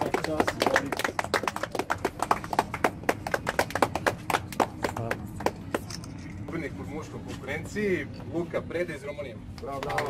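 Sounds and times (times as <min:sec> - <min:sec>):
crowd applauding: 0:00.0 - 0:05.7.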